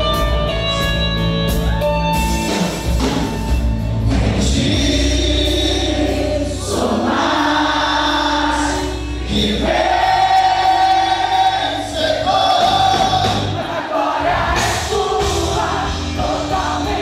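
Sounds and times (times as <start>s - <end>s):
band with bass: 0.0s - 17.0s
crowd singing worship song: 2.5s - 17.0s.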